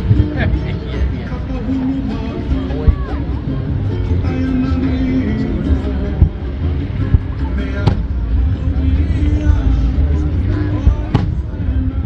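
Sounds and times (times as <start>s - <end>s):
song playing: 0.0s - 12.0s.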